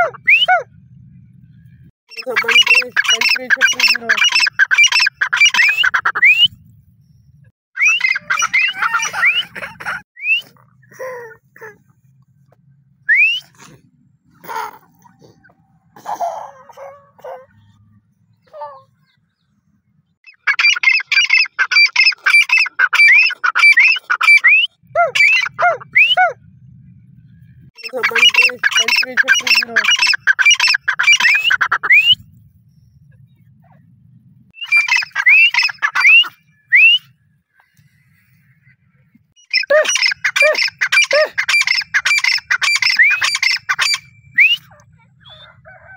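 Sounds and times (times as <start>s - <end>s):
francolins calling: 2.1s - 6.4s, 7.8s - 9.6s, 20.3s - 26.4s, 27.8s - 33.1s, 34.6s - 45.9s.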